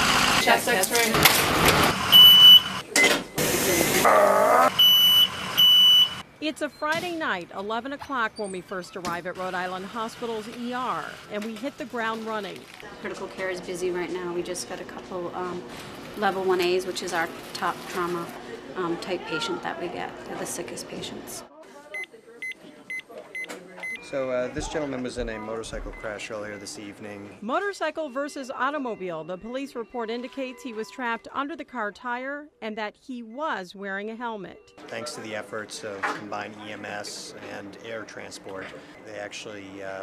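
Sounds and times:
monitor alarm beeping: 2.0 - 4.0, 4.7 - 6.9, 22.0 - 24.2, 25.2 - 31.2
high-pitched electronic alarm beeps: 2.1 - 3.1, 4.7 - 6.8.

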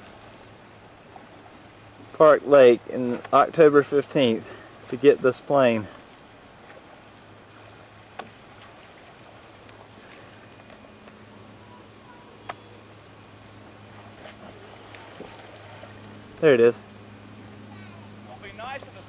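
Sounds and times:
faint steady low hum: 0.0 - 19.0.

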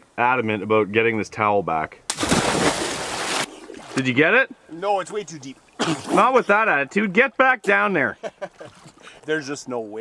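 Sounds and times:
loud water splash: 2.1 - 4.0.

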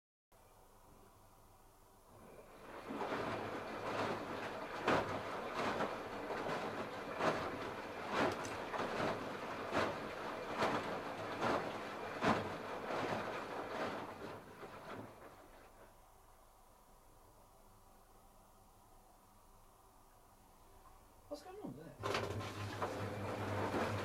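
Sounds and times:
splash and thud of falling laundry: 2.2 - 16.0, 22.0 - 24.0
washing machine drum churning: 2.2 - 16.0, 22.0 - 24.0.

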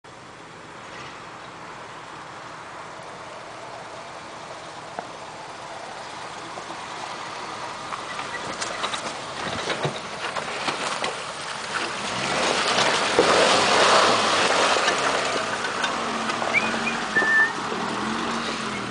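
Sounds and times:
car engine running: 1.4 - 18.9
water and mud splashing: 6.1 - 18.9.

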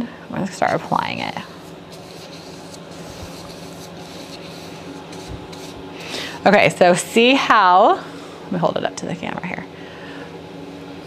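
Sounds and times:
brush bristles rubbing wet surface: 0.6 - 6.2.

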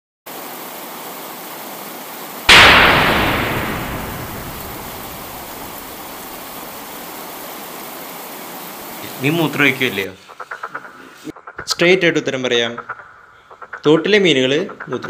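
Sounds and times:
steady hiss: 0.3 - 10.1
sudden loud burst of noise: 2.5 - 7.0.

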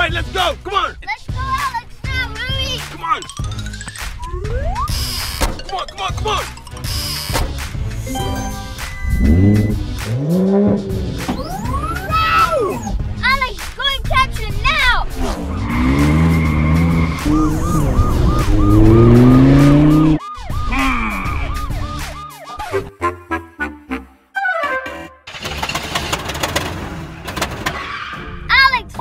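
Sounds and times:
background music: 0.0 - 25.3, 26.8 - 29.0
car engine revving: 9.1 - 20.2
engine sputtering: 25.3 - 27.6.

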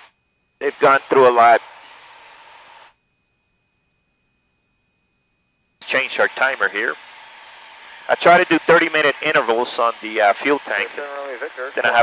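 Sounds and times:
intercom hiss with thin tone: 0.0 - 3.0, 5.8 - 12.0
man's voice: 8.1 - 12.0.

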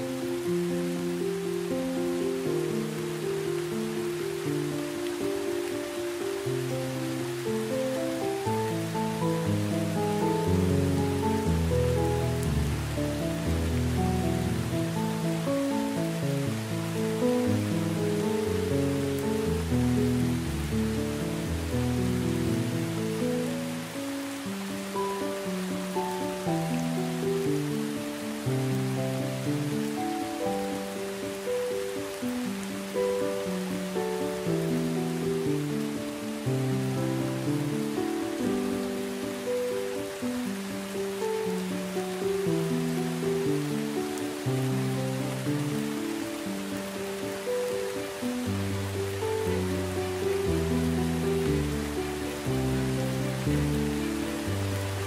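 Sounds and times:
heavy rain: 0.0 - 55.0
slow instrumental music: 0.0 - 55.0.

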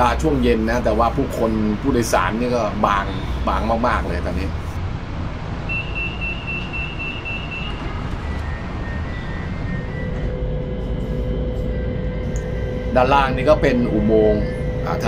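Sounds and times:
train low rumble: 0.0 - 15.0
door warning beeps: 5.7 - 12.8.

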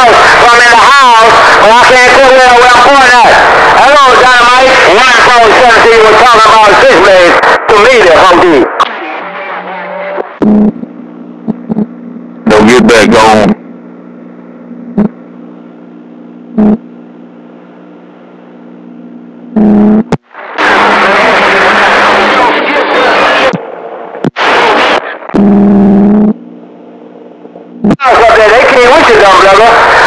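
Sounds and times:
voice over radio: 0.0 - 10.4, 12.5 - 13.6, 20.6 - 23.6, 27.9 - 30.0
garbled radio signal: 0.0 - 15.5, 16.5 - 16.9, 19.6 - 26.4, 27.6 - 30.0
radio static bursts: 0.0 - 16.9, 19.5 - 26.5, 27.5 - 30.0
radio hum: 0.0 - 30.0.

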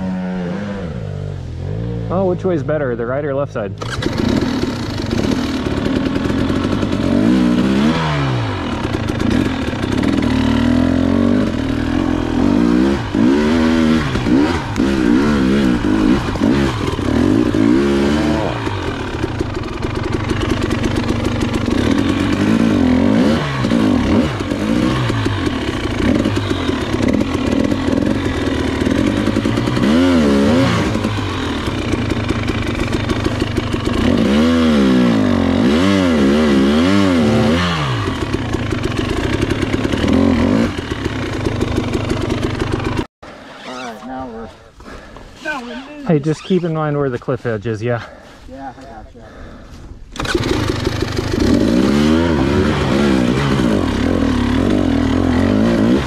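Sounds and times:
motorcycle engine revving: 0.0 - 45.1, 49.3 - 56.0.

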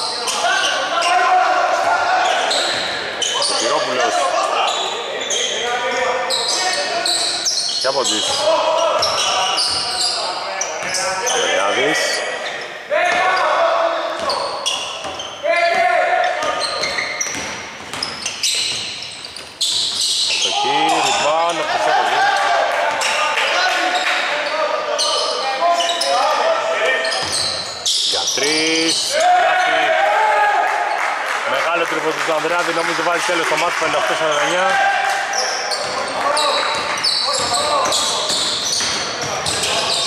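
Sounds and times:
players' voices: 0.0 - 40.0.

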